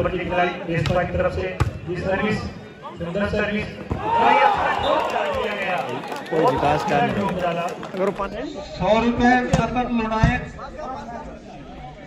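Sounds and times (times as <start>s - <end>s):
man talking: 5.3s - 11.0s.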